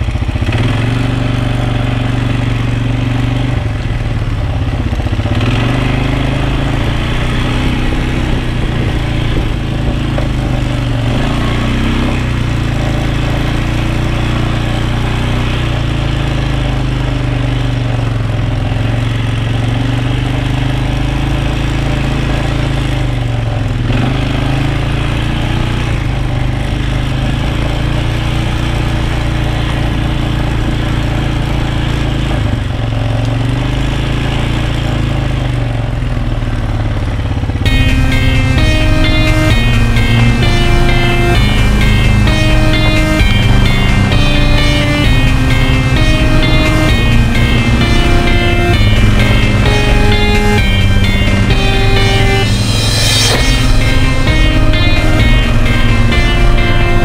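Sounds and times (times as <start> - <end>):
quad bike engine running: 0.0 - 57.0
music with plucked notes: 5.8 - 15.4, 37.7 - 57.0.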